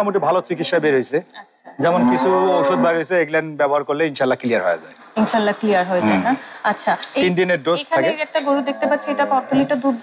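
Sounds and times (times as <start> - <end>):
cow mooing: 1.8 - 3.0, 8.6 - 9.8
people talking: 5.2 - 10.0.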